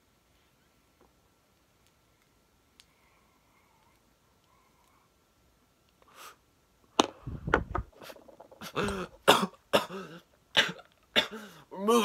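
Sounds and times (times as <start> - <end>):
man coughing: 8.6 - 11.6.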